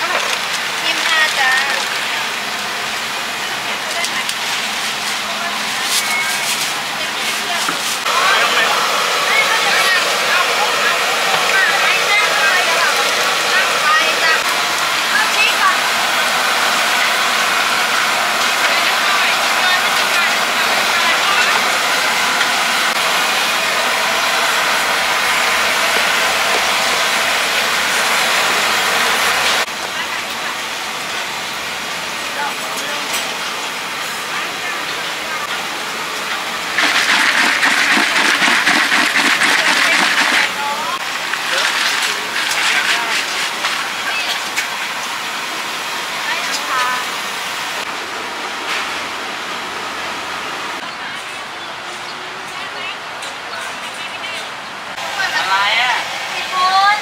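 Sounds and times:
chicken deep-frying in oil: 0:00.0 - 0:47.9
stall-side noise: 0:00.0 - 0:48.6.

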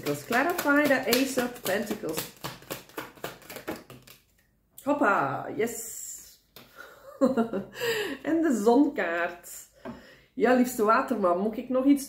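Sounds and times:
woman speaking: 0:00.0 - 0:02.3, 0:04.8 - 0:06.4, 0:08.2 - 0:09.8, 0:10.4 - 0:12.0
cards being shuffled: 0:00.0 - 0:04.4.

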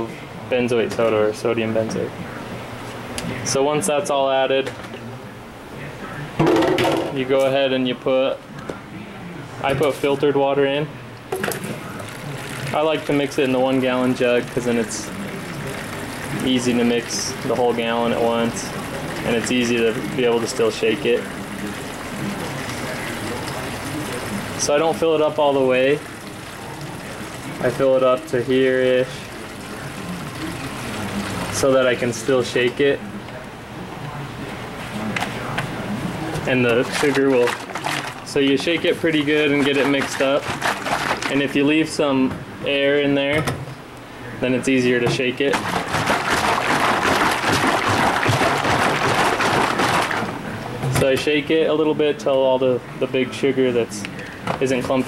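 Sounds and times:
water running into plastic jug: 0:11.4 - 0:32.9, 0:36.4 - 0:42.0, 0:45.1 - 0:51.2.

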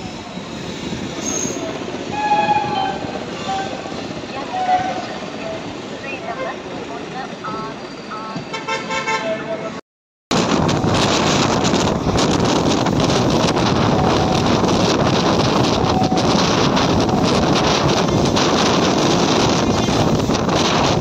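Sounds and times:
passenger train rumbling and rattling: 0:00.0 - 0:21.0
train horn toots: 0:02.1 - 0:03.9, 0:15.8 - 0:16.4.

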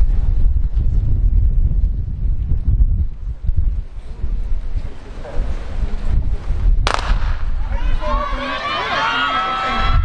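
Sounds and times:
wind rumble on microphone: 0:00.0 - 0:08.8, 0:09.5 - 0:10.0
starter's pistol shot: 0:06.9 - 0:07.5
crowd shouting and cheering: 0:07.4 - 0:10.0.

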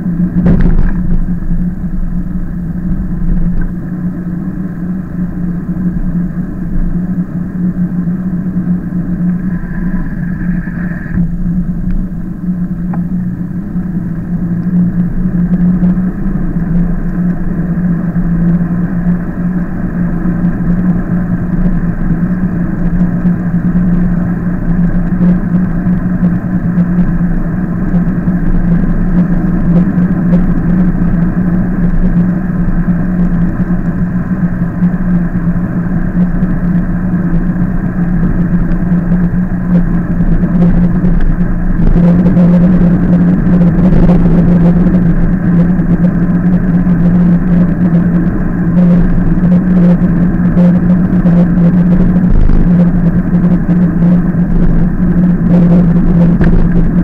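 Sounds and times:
e-bike hum and rumble: 0:00.0 - 0:57.0.

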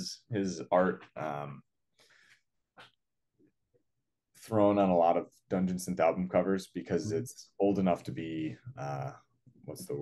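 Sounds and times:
faint breath: 0:01.9 - 0:02.5.

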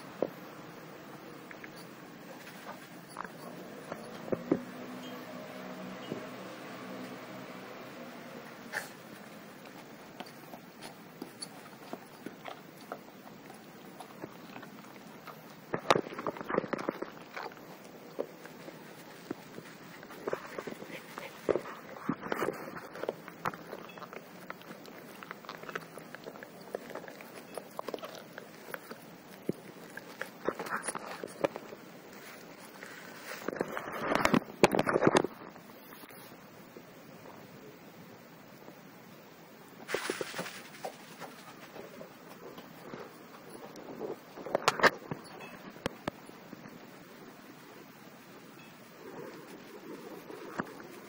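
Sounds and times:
dog paws on artificial turf: 0:01.2 - 0:34.5, 0:39.8 - 0:44.6
dog clicks and scuffs on turf: 0:39.8 - 0:42.1.

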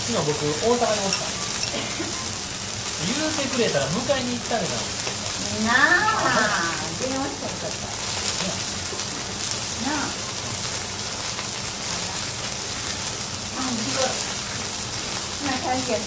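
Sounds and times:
faint voices: 0:00.0 - 0:16.0
food sizzling and crackling: 0:00.0 - 0:16.0.

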